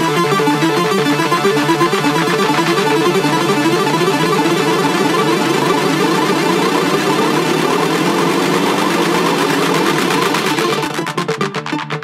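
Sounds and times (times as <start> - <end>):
layered synth electronic music: 0.0 - 12.0.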